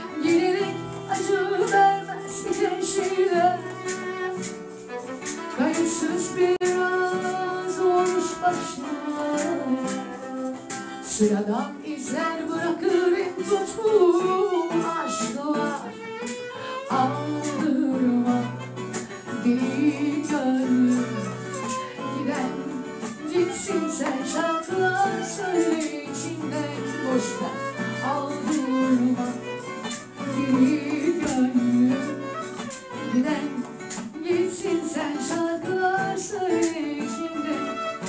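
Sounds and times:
woman singing into microphone: 0.0s - 4.4s, 5.4s - 38.0s
bowed violin: 0.0s - 38.0s
strummed acoustic guitar: 0.0s - 38.0s.

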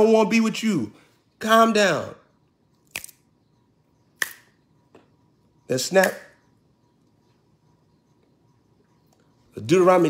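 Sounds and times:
finger snaps: 2.8s - 3.3s, 4.2s - 5.1s.

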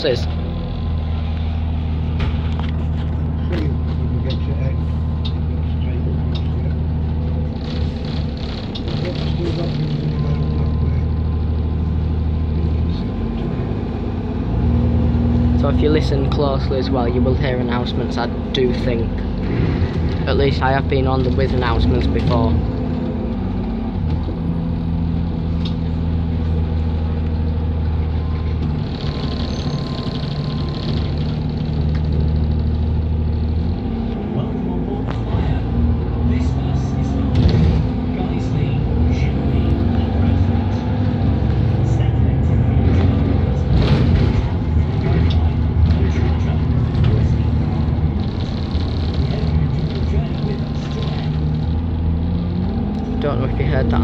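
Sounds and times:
bus engine running: 0.0s - 54.0s.

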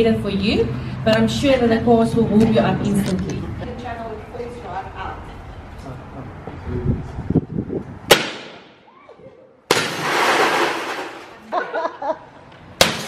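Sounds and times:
glass breaking crash: 9.7s - 11.4s.

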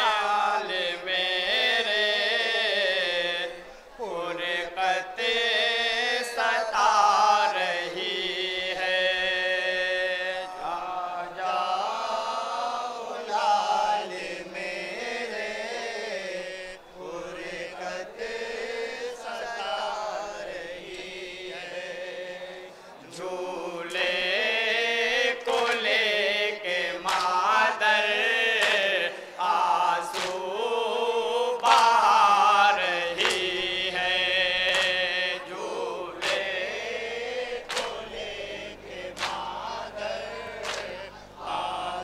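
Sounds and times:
men chanting a lament: 0.0s - 42.0s
hands slapping chests: 27.0s - 27.4s, 28.6s - 28.9s, 30.1s - 30.4s, 33.2s - 33.5s, 34.7s - 35.0s, 36.2s - 36.5s, 37.7s - 38.0s, 39.2s - 39.4s, 40.6s - 41.0s.

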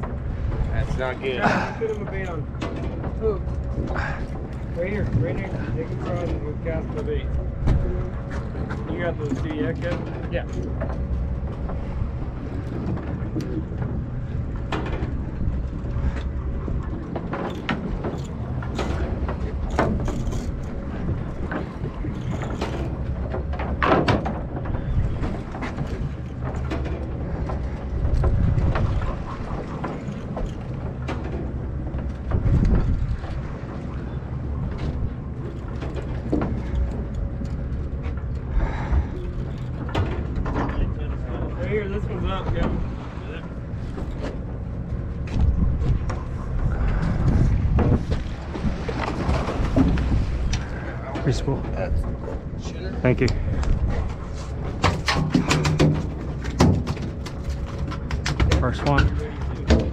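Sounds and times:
boat engine humming: 0.0s - 59.9s
knocks and clunks on deck: 21.0s - 33.5s, 53.3s - 59.9s.

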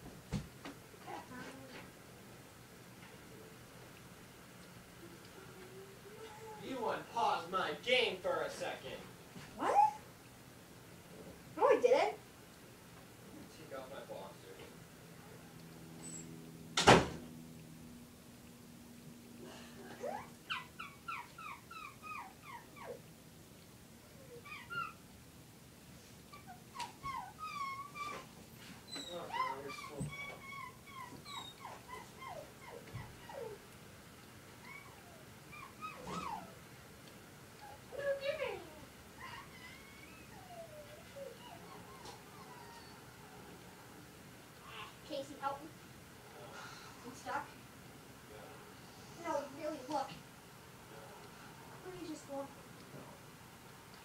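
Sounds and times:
animal whimpering cries: 5.0s - 6.8s, 9.6s - 10.1s, 15.2s - 16.4s, 19.5s - 23.1s, 24.1s - 25.1s, 26.3s - 33.6s, 34.6s - 36.7s, 37.6s - 43.2s.

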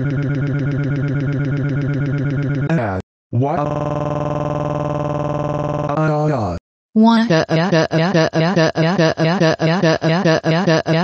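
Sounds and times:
synthetic voice crying wail: 7.2s - 11.0s.

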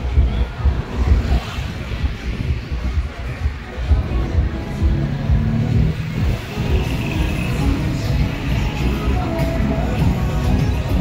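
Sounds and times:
music with deep bass: 0.0s - 11.0s.

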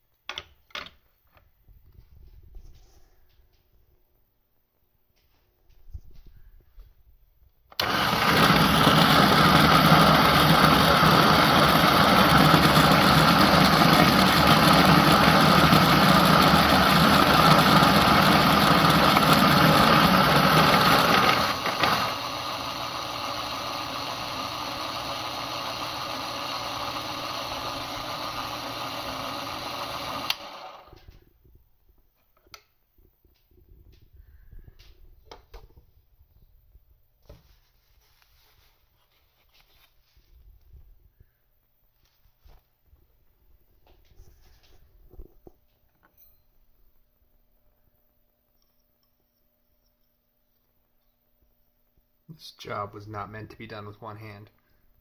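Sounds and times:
coffee grinder running: 7.7s - 31.1s.

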